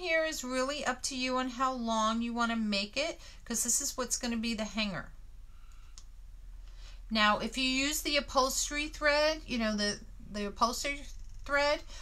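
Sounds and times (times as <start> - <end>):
low steady hum: 0.0 - 12.0
light click: 5.7 - 6.1.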